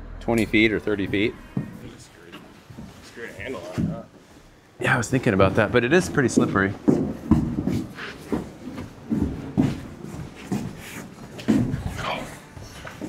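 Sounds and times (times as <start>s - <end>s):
boot footsteps on wooden floor: 1.1s - 13.0s.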